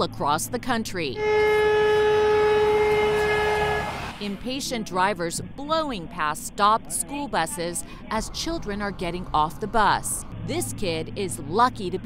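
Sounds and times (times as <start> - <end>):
long vehicle horn blast: 1.2 - 4.2.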